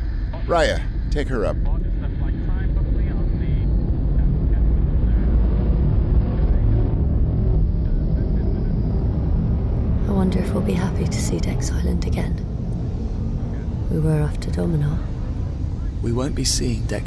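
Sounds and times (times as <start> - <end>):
deep rumble of aircraft engines: 0.0 - 17.0.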